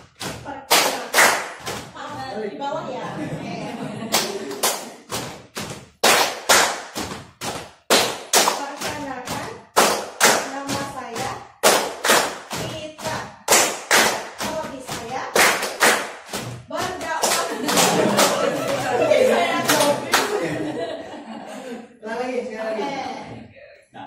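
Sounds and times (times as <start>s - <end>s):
people clapping in rhythm: 0.0s - 2.4s, 3.2s - 21.6s.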